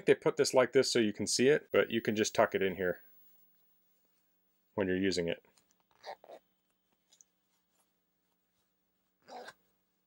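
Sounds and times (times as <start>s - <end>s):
fabric rustling: 5.8s - 9.4s.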